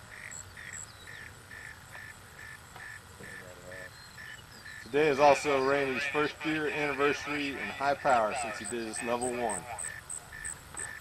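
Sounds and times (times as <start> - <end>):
regular chirping: 0.0 - 11.0.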